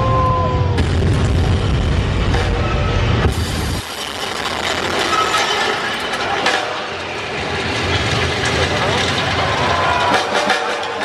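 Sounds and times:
low rumble: 0.0s - 3.8s
murmur of crowd voices: 5.1s - 11.0s.

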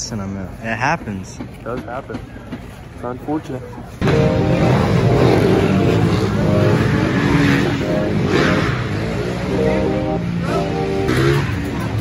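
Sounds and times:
dirt bike engines revving: 4.0s - 12.0s.

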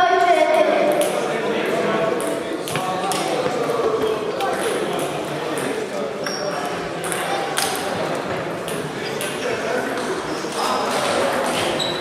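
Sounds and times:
murmur of voices: 0.0s - 12.0s
table tennis balls clicking: 4.4s - 11.8s.

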